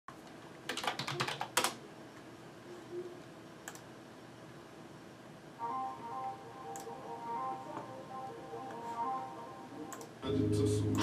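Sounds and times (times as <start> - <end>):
computer keyboard typing: 0.6 - 1.8.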